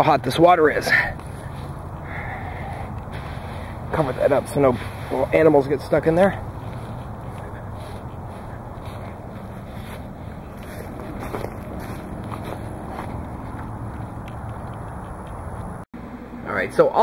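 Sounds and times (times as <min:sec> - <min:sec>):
footsteps on grass: 0:01.1 - 0:15.8.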